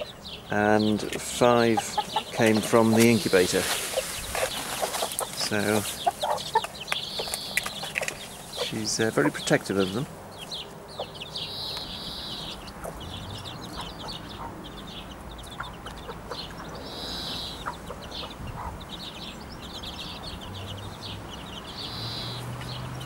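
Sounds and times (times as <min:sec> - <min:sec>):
hen clucking: 0:00.0 - 0:20.6
chicks peeping: 0:00.0 - 0:23.0.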